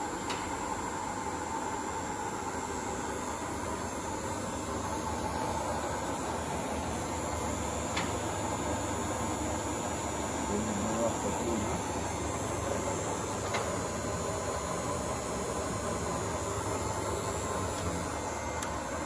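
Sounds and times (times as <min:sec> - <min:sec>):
mechanical running noise: 0:03.4 - 0:19.0.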